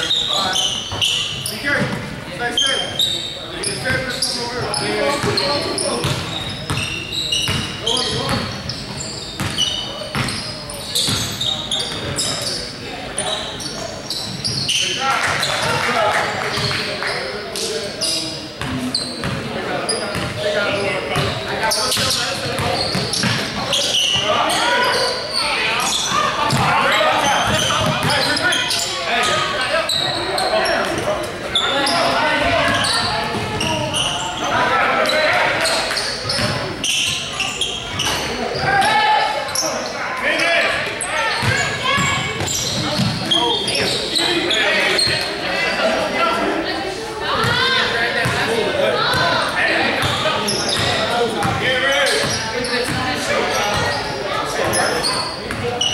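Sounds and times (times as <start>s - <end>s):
players calling out: 0.0s - 55.9s.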